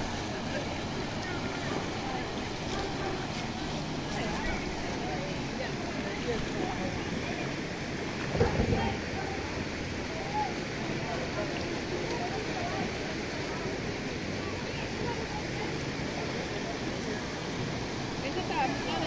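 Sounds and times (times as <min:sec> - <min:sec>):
faint voices: 0:00.0 - 0:19.0
floodwater rushing through street: 0:00.0 - 0:19.0.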